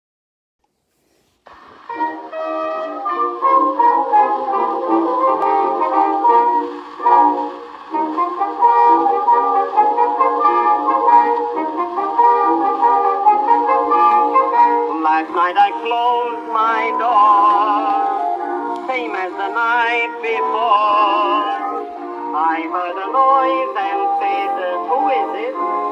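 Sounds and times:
old brass-led orchestra recording: 0:01.6 - 0:25.9.

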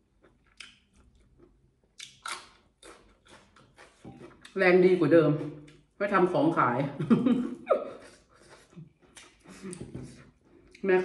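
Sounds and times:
person chewing food: 0:00.0 - 0:04.6, 0:08.1 - 0:10.8.

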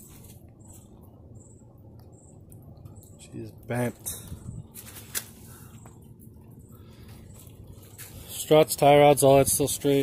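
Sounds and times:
faint high-pitched chirps: 0:00.0 - 0:04.4
low steady rumble: 0:00.0 - 0:09.8.

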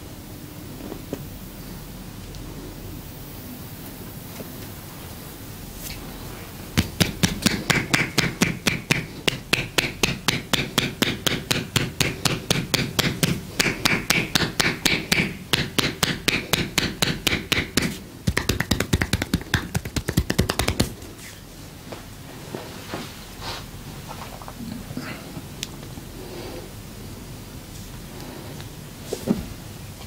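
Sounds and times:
hands slapping bare skin: 0:06.8 - 0:21.1.

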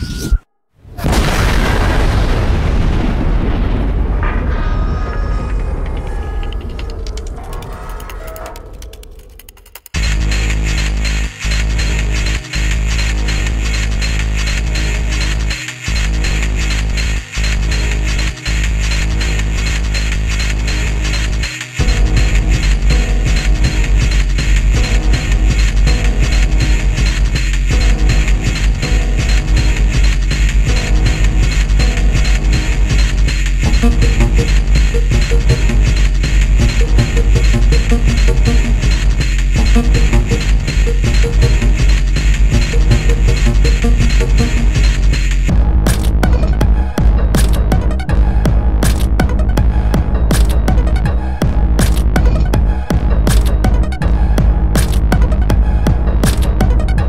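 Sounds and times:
explosion-like boom effect: 0:00.9 - 0:06.0
electronic track with heavy bass: 0:11.3 - 0:57.0.

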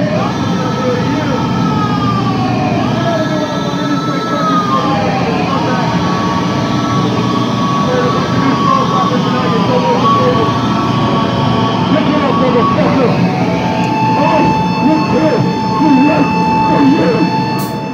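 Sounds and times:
people's voices: 0:00.0 - 0:17.8
guitar amplifier feedback howling: 0:03.1 - 0:17.9.

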